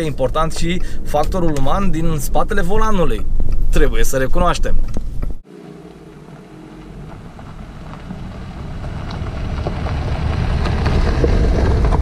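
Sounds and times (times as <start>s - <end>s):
car engine: 5.4s - 12.0s
tyres on gravel: 5.4s - 12.0s.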